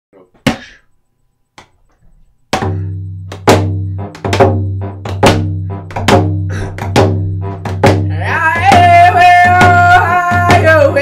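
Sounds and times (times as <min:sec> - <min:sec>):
frame drum beaten in rhythm: 0:02.6 - 0:11.0.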